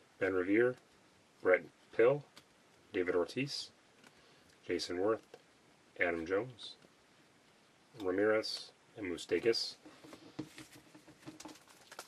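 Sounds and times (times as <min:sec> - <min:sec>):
cards handled on a table: 0:09.8 - 0:12.0.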